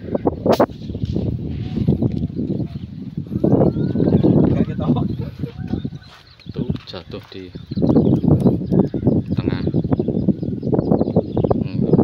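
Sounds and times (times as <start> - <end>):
air rifle shot: 0.5 - 1.4.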